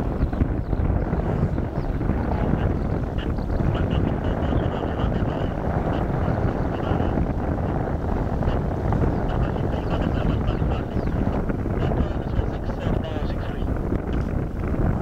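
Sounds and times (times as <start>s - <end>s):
jet engines roaring: 0.0s - 15.0s
wind on microphone: 0.0s - 15.0s.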